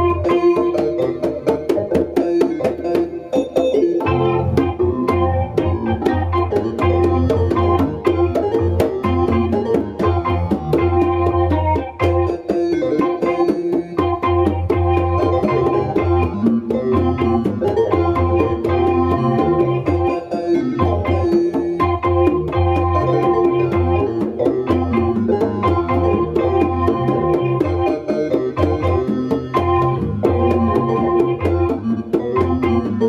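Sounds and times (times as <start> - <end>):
congas playing: 0.0 - 33.0
organ-like synthesizer chords: 0.0 - 33.0
low bass line: 4.0 - 12.2.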